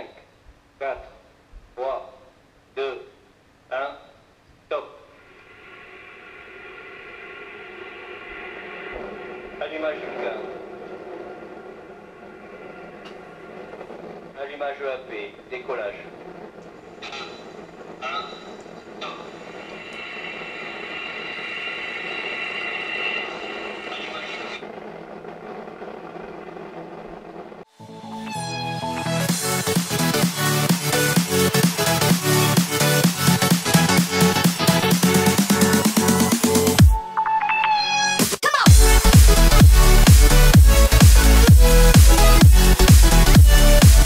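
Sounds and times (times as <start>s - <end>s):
rocket engine rushing: 5.1s - 27.7s
music: 27.7s - 44.0s.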